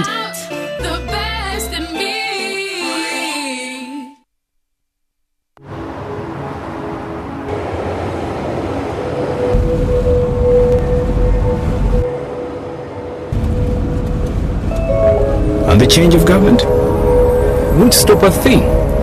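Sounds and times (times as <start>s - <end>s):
background music: 0.0s - 4.2s, 5.6s - 19.0s
city traffic noise: 5.6s - 19.0s
deep rumble: 5.8s - 19.0s.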